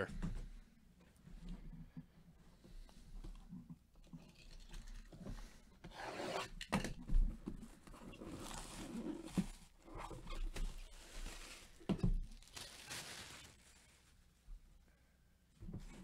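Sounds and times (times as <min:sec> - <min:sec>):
plastic wrap rustling and tearing: 0:08.1 - 0:14.1.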